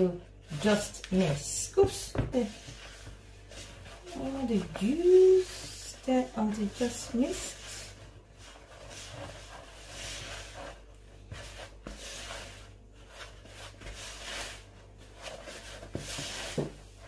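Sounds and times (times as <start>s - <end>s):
spatula scraping dough in bowl: 0.0s - 17.0s.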